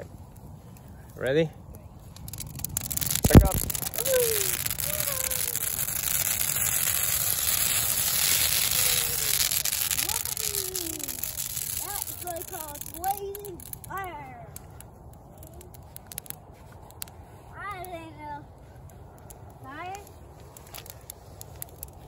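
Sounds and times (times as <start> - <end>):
fire crackling: 0.0 - 22.0.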